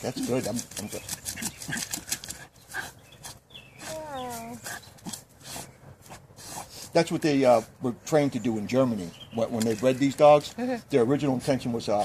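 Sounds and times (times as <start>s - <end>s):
dog sniffing and snorting: 0.0s - 7.7s, 10.4s - 12.0s.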